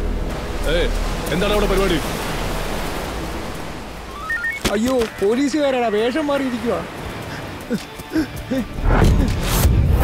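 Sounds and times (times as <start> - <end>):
ocean surf washing onto beach: 0.0 - 8.6.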